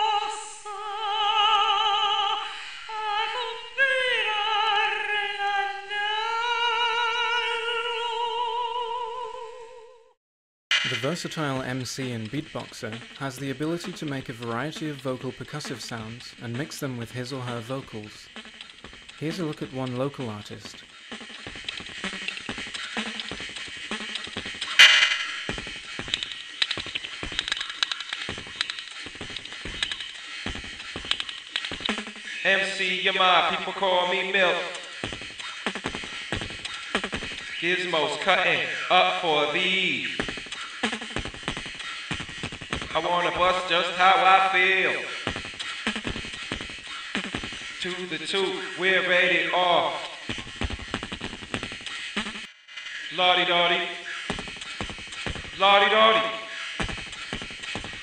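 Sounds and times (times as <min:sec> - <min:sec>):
beatboxing vocal percussion: 0:10.7 - 0:58.0
faint scanner noise: 0:10.7 - 0:58.0.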